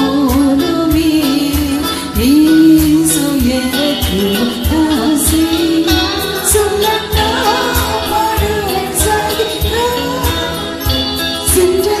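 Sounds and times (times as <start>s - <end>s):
band playing steady beat: 0.0s - 12.0s
woman singing worship song: 0.0s - 12.0s.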